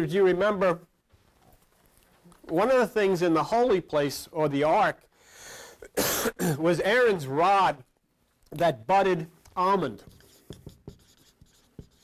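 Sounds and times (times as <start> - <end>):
pen scratching on paper: 9.8 - 12.0
pen tapping: 10.0 - 12.0.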